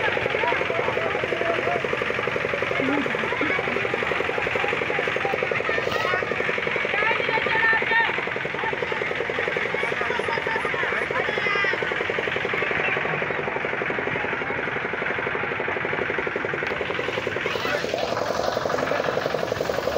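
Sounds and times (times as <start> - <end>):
crowd voices and shouts: 0.0 - 19.9
engine puttering: 0.0 - 19.9.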